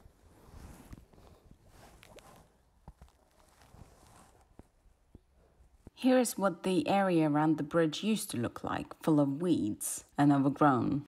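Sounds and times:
soft clicks and rustles: 0.0 - 6.0.

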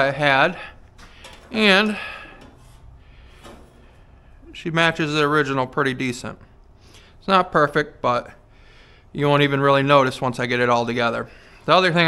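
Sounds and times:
faint handling noises: 0.7 - 4.2.

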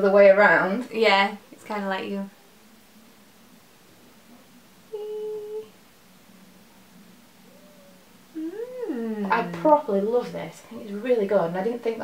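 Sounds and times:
woman humming: 4.9 - 5.8, 7.5 - 9.8.

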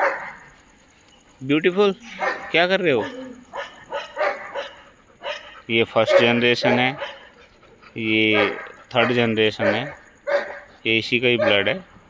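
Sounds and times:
dogs barking: 0.0 - 0.6, 2.1 - 12.0.

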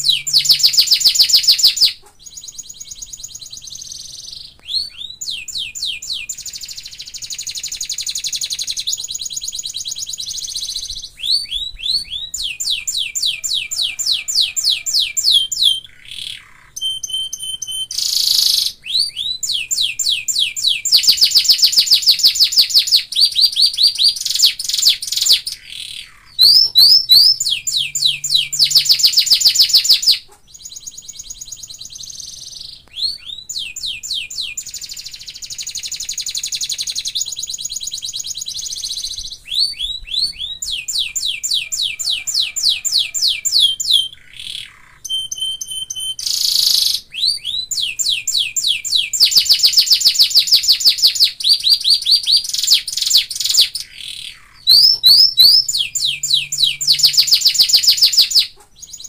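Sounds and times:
canary singing trills: 0.0 - 59.0.

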